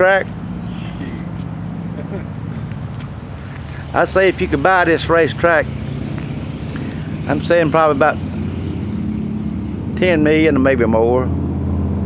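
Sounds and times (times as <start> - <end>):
steady low engine hum: 0.0 - 12.0.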